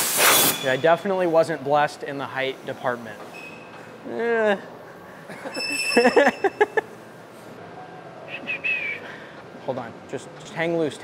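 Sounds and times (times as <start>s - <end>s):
man laughing: 4.1s - 7.0s.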